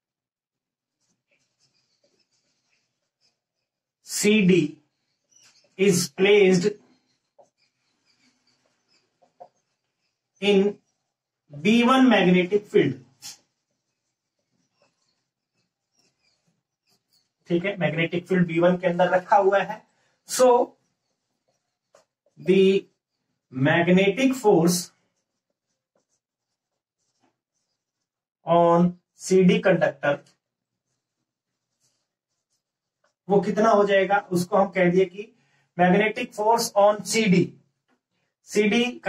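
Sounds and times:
marker writing on whiteboard: 0:00.8 - 0:39.0.

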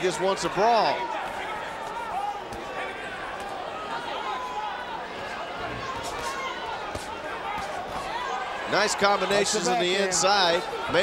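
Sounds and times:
arena crowd noise: 0:00.0 - 0:11.0
audience shouts: 0:00.0 - 0:11.0.

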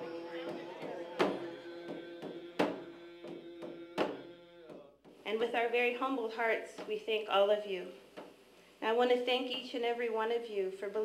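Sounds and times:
person singing long notes: 0:00.0 - 0:05.0
frame drum beats: 0:00.0 - 0:05.6.

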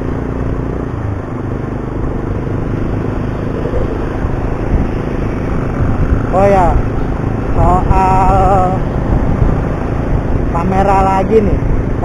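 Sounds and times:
motorcycle engine cruising: 0:00.0 - 0:12.0
wind and road noise: 0:00.0 - 0:12.0.

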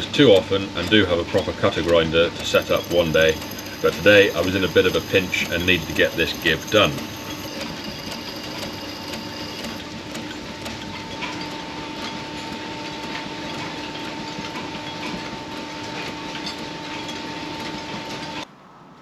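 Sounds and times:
machinery humming: 0:00.0 - 0:18.4
light regular ticking: 0:00.2 - 0:10.8
drill edge grinding on stone: 0:02.4 - 0:09.8.

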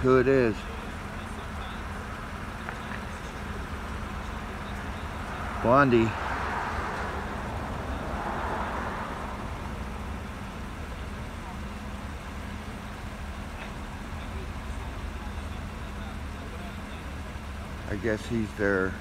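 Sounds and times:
road traffic rush: 0:00.0 - 0:19.0
vehicle engines idling: 0:00.0 - 0:19.0.

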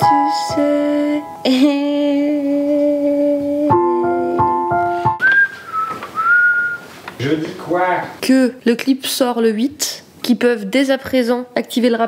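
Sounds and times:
person whistling: 0:05.1 - 0:06.9.

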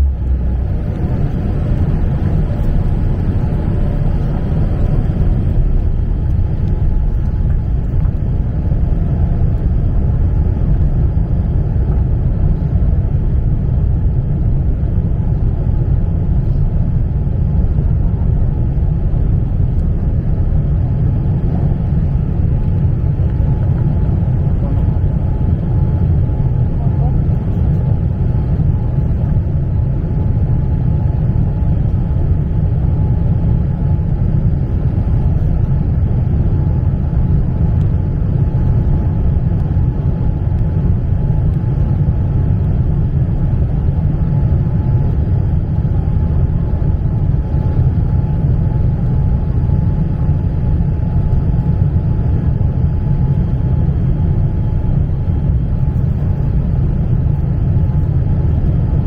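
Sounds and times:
airliner cabin rumble: 0:00.0 - 0:59.0
faint steady whine: 0:00.0 - 0:59.0.

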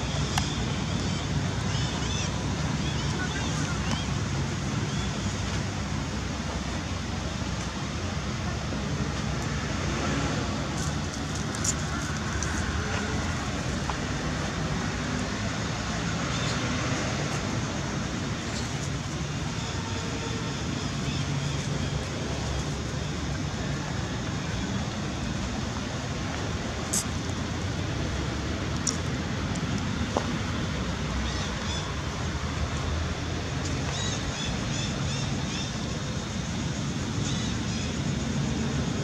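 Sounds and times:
faint sharp clicks: 0:28.7 - 0:30.3.

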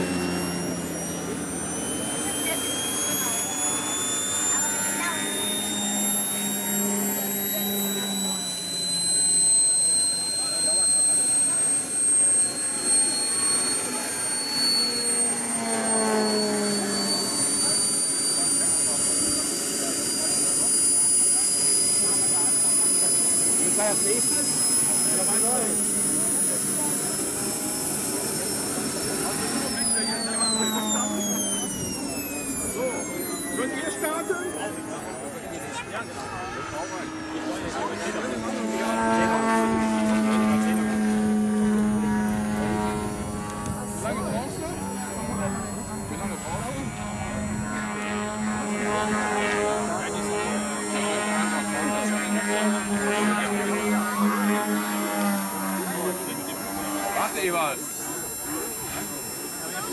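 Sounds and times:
model plane engine droning: 0:00.0 - 0:59.9.

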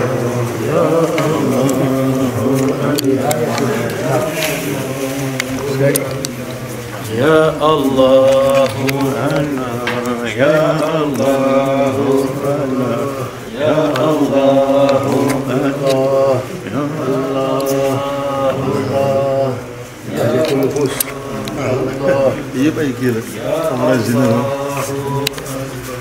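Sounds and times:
man chanting: 0:00.0 - 0:26.0.

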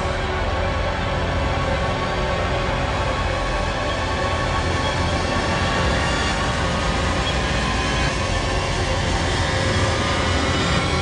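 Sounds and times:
dark ominous film score: 0:00.0 - 0:11.0.

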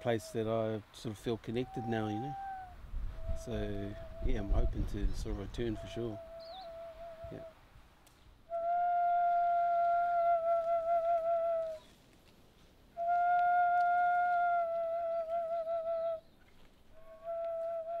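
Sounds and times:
flute playing long held notes: 0:01.6 - 0:07.5, 0:08.5 - 0:12.0, 0:13.0 - 0:16.2, 0:17.0 - 0:18.0.

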